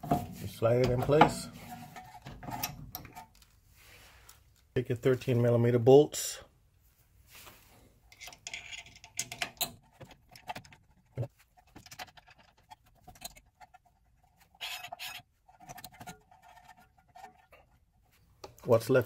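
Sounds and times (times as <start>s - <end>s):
metal bolts clicking and scraping: 0.0s - 3.6s, 8.0s - 18.7s.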